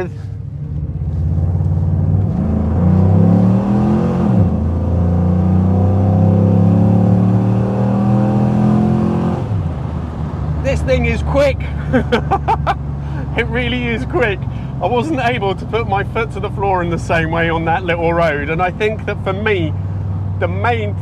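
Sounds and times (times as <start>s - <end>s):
car engine accelerating hard: 0.6s - 19.2s.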